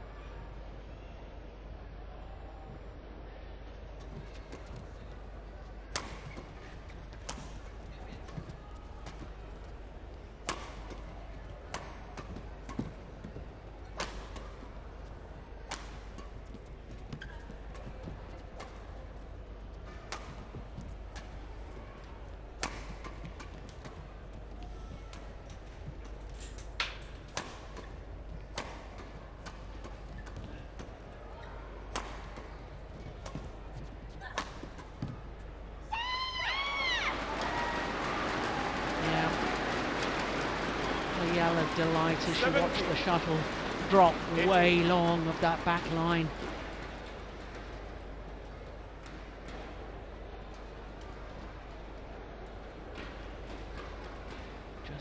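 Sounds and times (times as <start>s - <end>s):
rackets striking shuttlecock: 10.4s - 11.0s.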